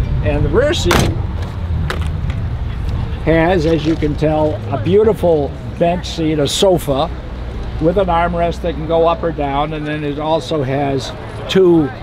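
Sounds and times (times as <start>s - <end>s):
car door latch clicking: 0.9s - 1.3s.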